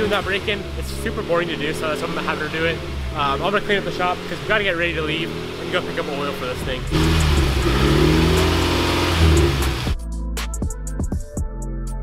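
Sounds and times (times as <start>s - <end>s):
car engine at raised revs: 0.0s - 10.0s.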